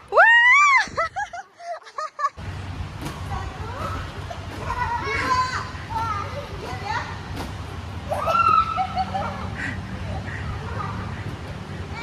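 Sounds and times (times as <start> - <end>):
steady low hum: 0.0 - 12.0
children calling and squealing: 3.2 - 7.4, 8.0 - 12.0.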